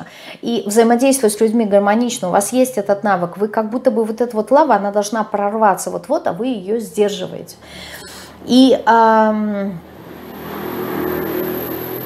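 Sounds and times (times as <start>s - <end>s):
vehicle passing by: 6.8s - 12.0s.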